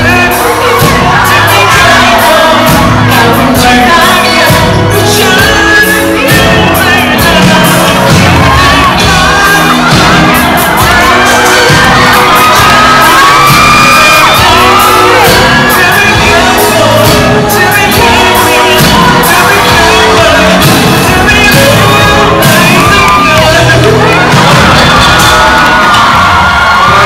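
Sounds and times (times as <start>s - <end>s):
live pop song through pa: 0.0s - 27.0s
man singing: 0.0s - 27.0s.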